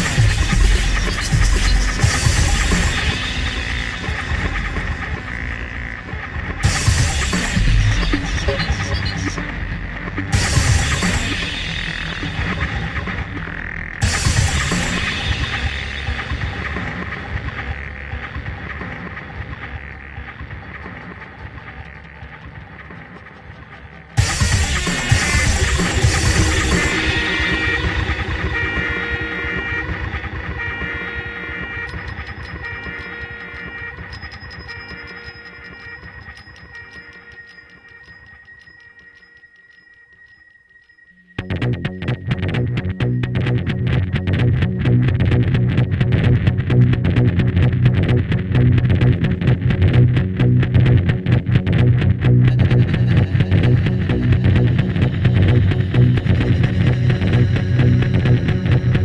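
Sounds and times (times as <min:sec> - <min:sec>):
loud punk rock with heavy bass: 0:00.0 - 0:34.7, 0:41.4 - 0:59.0
held droning tones: 0:00.0 - 0:59.0.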